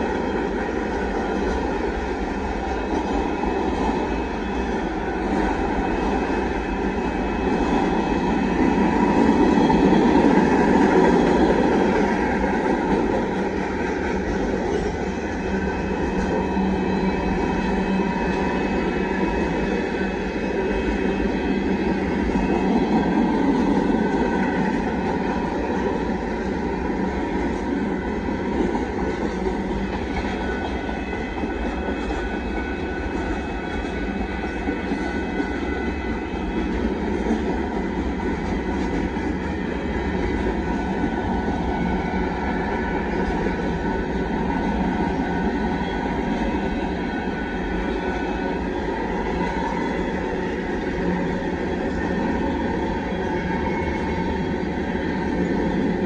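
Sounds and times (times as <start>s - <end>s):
freight train rolling past: 0.0s - 56.0s.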